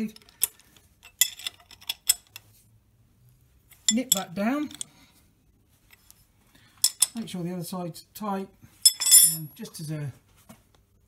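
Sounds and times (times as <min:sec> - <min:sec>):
spanner clinking on metal: 0:00.0 - 0:02.4, 0:03.8 - 0:04.9, 0:06.8 - 0:07.2, 0:08.9 - 0:09.5.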